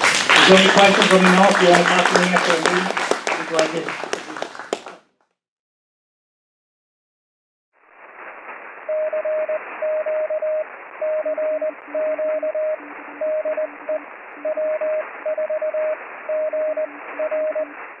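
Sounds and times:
shortwave radio hiss: 7.8 - 18.0
morse code tone: 8.9 - 17.8
lower morse code signal: 8.9 - 18.0.

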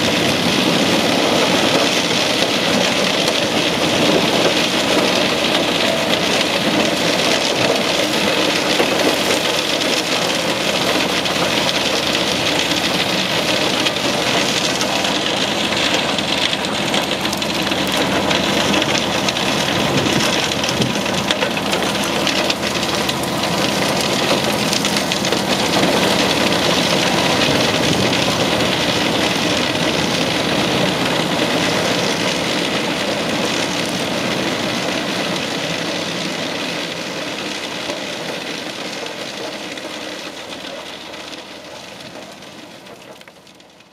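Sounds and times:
truck engine working: 0.0 - 43.9
wood chipper chipping brush: 0.0 - 43.9.

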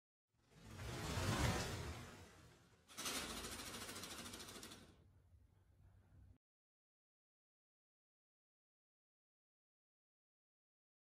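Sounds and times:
whoosh: 0.4 - 3.7
rapid fine clicks: 2.9 - 5.0.

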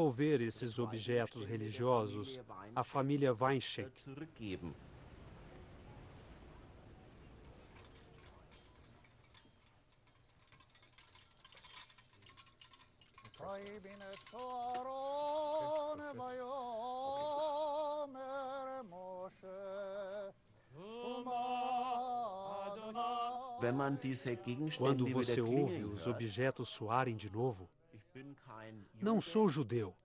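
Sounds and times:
small bells jingling: 7.2 - 17.7, 24.4 - 26.4.

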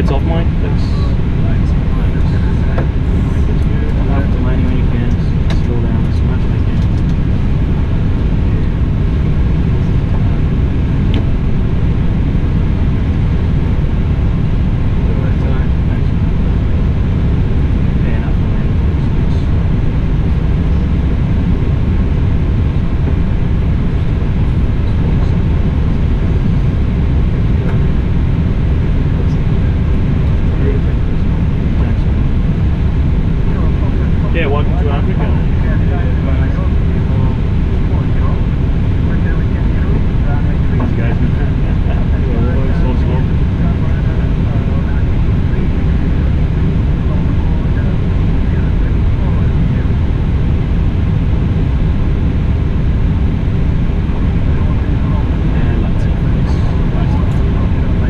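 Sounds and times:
faint voices: 0.0 - 58.0
low rumble of idling jet engines: 0.0 - 58.0.

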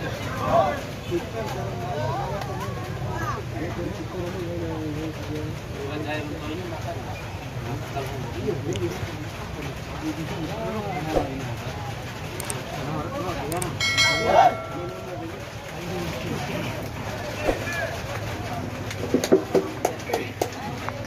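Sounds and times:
people talking and calling out: 0.0 - 21.0
loud drawn-out call: 13.8 - 15.2.

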